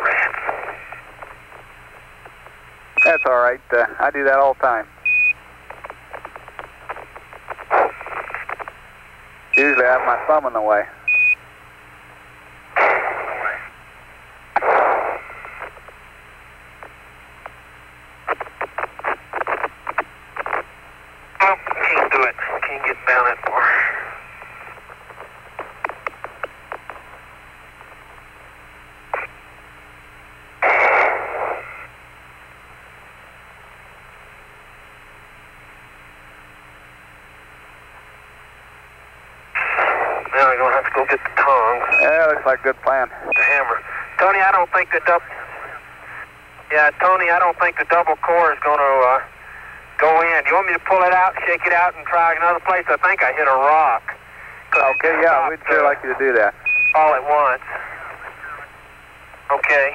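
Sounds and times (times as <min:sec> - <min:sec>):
radio noise bursts: 0:00.0 - 0:11.4, 0:12.7 - 0:29.4, 0:30.5 - 0:32.0, 0:38.8 - 0:59.9
radio hiss and hum: 0:00.0 - 0:59.9.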